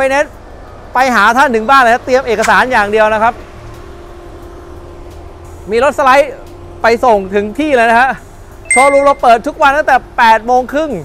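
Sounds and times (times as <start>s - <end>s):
man speaking: 8.7s - 9.5s.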